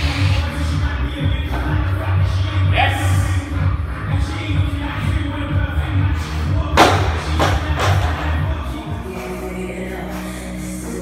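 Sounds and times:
music with steady beat: 0:00.0 - 0:11.0.

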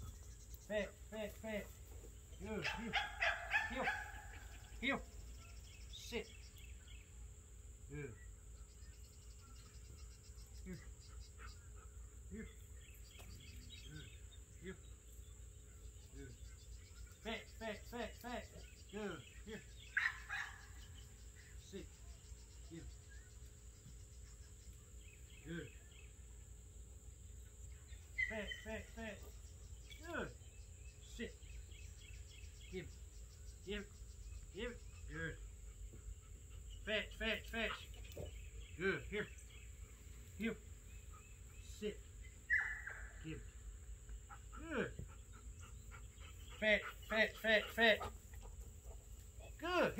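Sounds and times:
insects droning: 0:00.0 - 0:49.9
dog barking: 0:02.6 - 0:04.4, 0:20.0 - 0:20.6.

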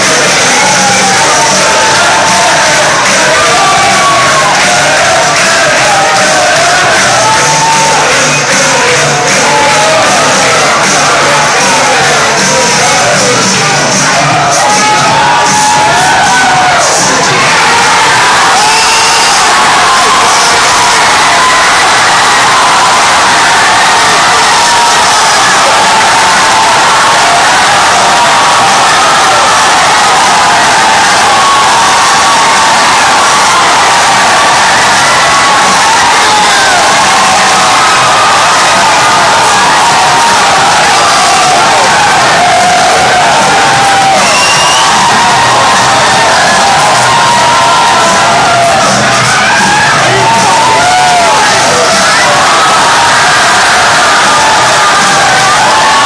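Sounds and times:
crowd cheering and screaming: 0:00.0 - 0:56.0.

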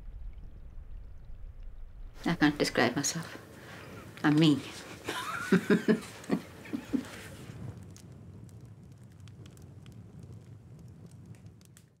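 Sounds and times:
faint low rumble: 0:00.0 - 0:12.0
small crackles and clicks: 0:03.2 - 0:12.0.

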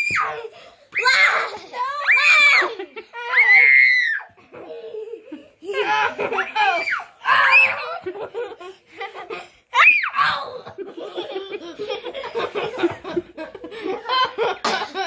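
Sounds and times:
children laughing and squealing: 0:00.0 - 0:15.0.

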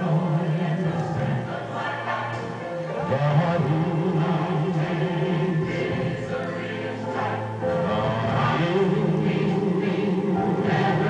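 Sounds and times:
gospel choir singing: 0:00.0 - 0:11.0
male soloist singing: 0:03.0 - 0:05.9.

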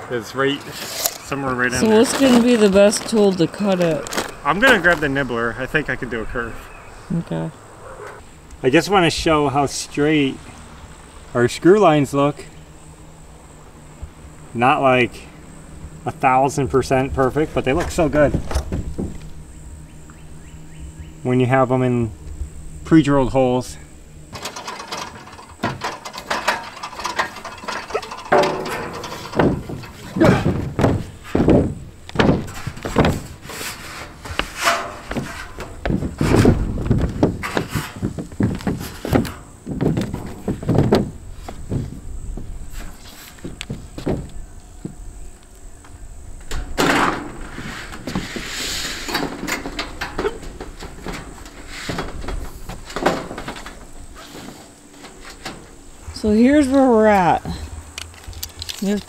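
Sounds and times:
metal sheet scraping: 0:24.4 - 0:31.6, 0:32.3 - 0:39.5
metal sheet knocks and rattles: 0:24.4 - 0:33.6, 0:34.4 - 0:41.9, 0:49.1 - 0:54.0.

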